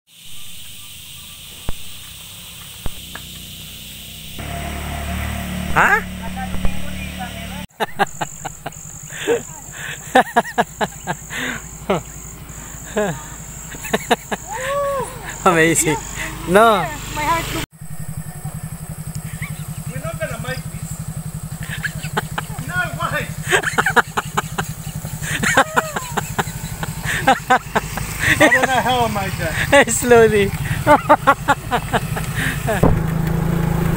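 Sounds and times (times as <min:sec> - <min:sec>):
steady high hiss: 0:00.1 - 0:05.6, 0:19.8 - 0:32.7
scooter engine running slowly: 0:00.6 - 0:33.9
person laughing: 0:07.7 - 0:16.5, 0:21.5 - 0:29.9, 0:30.6 - 0:32.9.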